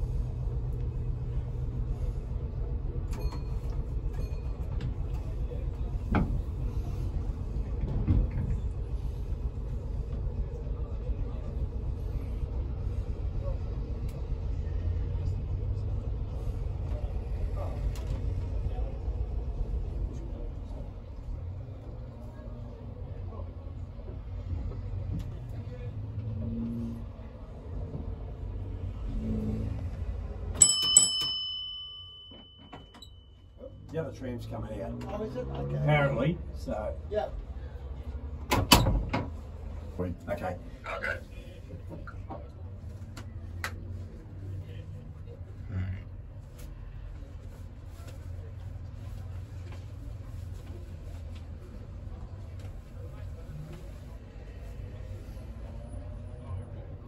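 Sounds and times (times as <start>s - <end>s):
tram rumbling and rattling: 0.0s - 57.0s.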